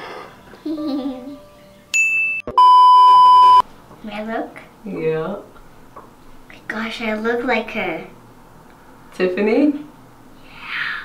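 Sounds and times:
short high electronic beep: 0:02.1 - 0:03.6
lower electronic beep: 0:02.2 - 0:03.6.

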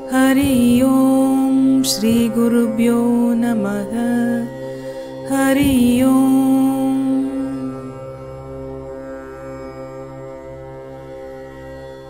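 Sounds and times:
mantra chanting: 0:00.0 - 0:04.5, 0:05.2 - 0:08.0
steady drone: 0:00.0 - 0:11.8.

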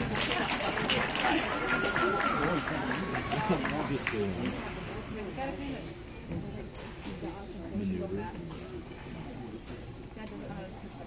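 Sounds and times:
spectators talking: 0:00.0 - 0:11.0.

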